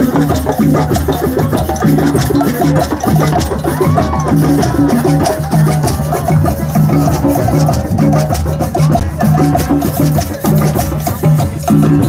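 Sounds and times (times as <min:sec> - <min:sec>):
hand drums playing rhythm: 0:00.0 - 0:12.0
sharp percussion clicks: 0:00.0 - 0:12.0.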